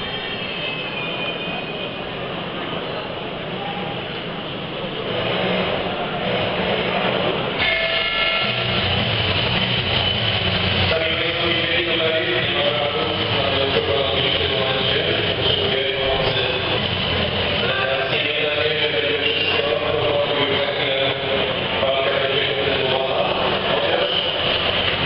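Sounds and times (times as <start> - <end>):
crowd din: 2.4 - 25.0.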